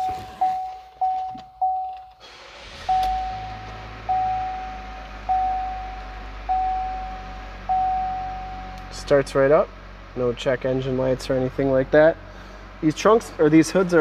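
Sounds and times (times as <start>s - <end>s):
dashboard warning chime: 0.0s - 2.2s, 2.8s - 8.9s
car engine starting and idling: 0.0s - 14.0s.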